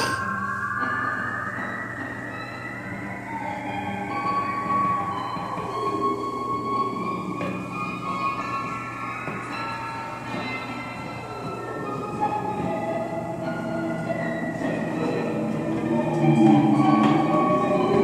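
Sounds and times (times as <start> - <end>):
improvised cello and electronics: 0.0 - 18.0.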